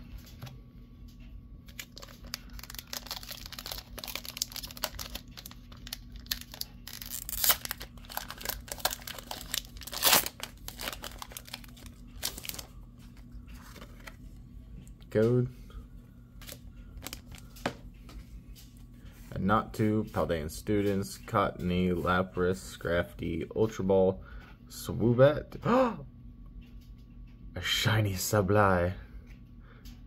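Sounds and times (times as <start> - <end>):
wrapper ripping: 1.7 - 12.7
wrapper crinkling: 1.7 - 14.2, 16.4 - 17.5
trading cards handled: 1.7 - 14.4.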